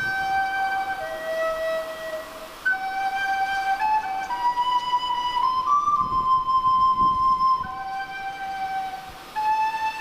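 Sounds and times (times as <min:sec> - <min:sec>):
recorder playing slow melody: 0:00.0 - 0:10.0.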